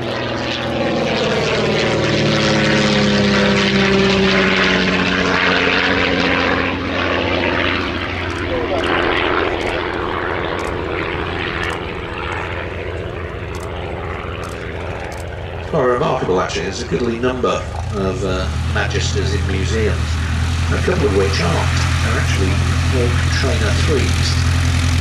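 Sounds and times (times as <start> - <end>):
propeller aircraft engine: 0.0 - 25.0.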